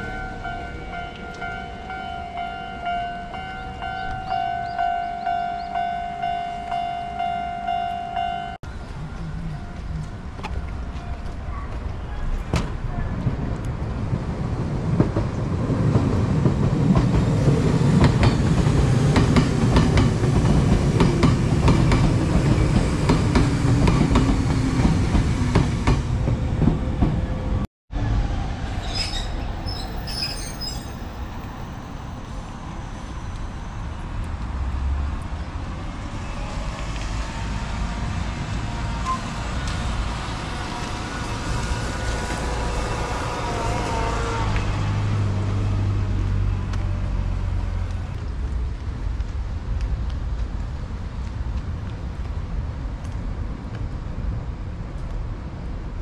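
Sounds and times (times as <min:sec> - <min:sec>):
train wheel squeals: 0:28.8 - 0:34.0, 0:39.0 - 0:39.4.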